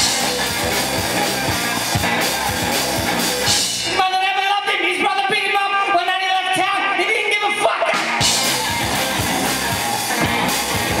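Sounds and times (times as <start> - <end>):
electric guitar: 0.0 - 4.0, 7.9 - 11.0
drum kit: 0.0 - 4.2, 7.9 - 11.0
live rock band playing: 0.0 - 5.0, 7.5 - 11.0.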